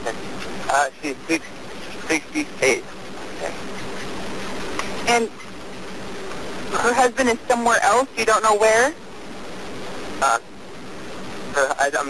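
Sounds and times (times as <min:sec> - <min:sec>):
phone call hiss: 0:00.0 - 0:12.0.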